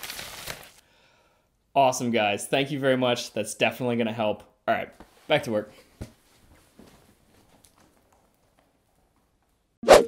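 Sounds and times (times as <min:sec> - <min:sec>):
faint footsteps walking away: 0:06.0 - 0:09.8.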